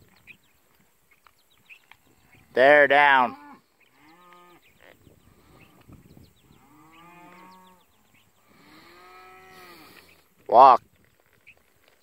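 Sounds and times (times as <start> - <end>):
cattle mooing: 3.0 - 4.6, 6.6 - 7.9, 8.5 - 10.0.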